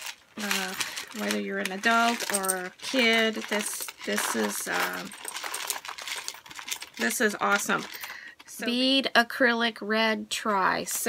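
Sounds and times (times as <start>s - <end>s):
plastic pieces clicking in bag: 0.0s - 8.5s.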